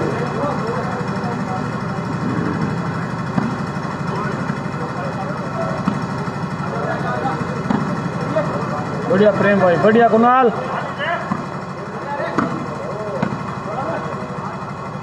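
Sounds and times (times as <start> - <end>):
low engine-like hum: 0.0 - 15.0
spectators murmuring: 0.0 - 15.0
volleyball being struck: 3.2 - 3.9, 5.8 - 6.2, 7.6 - 8.0, 11.2 - 11.6, 12.3 - 12.6, 13.2 - 13.5.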